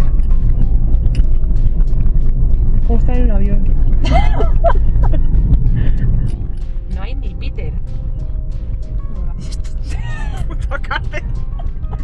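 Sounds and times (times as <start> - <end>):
car driving rumble: 0.0 - 12.0
music: 0.0 - 12.0.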